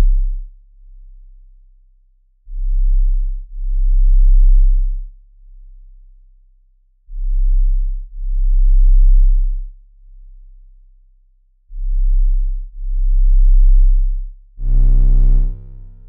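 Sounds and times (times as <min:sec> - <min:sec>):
deep sub-bass synth notes: 0:00.0 - 0:00.5, 0:02.5 - 0:05.0, 0:07.1 - 0:09.7, 0:11.7 - 0:16.0
faint low hum: 0:11.7 - 0:16.0.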